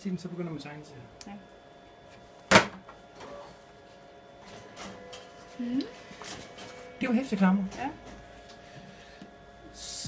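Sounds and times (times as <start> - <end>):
copier cover snapping shut: 2.5 - 3.3.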